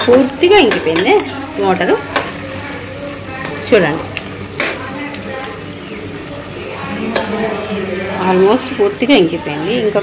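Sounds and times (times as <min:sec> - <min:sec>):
spatula stirring in pot: 0:00.0 - 0:08.7
meat sizzling in gravy: 0:00.0 - 0:10.0.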